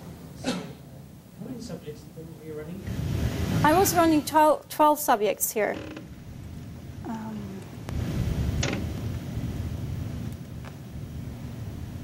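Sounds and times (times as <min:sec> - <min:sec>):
low rumbling noise: 0:02.9 - 0:04.3, 0:05.8 - 0:12.0.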